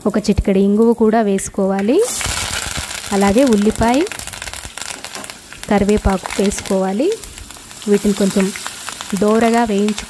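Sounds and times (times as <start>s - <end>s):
onion sizzling in hot oil: 0.0s - 10.0s.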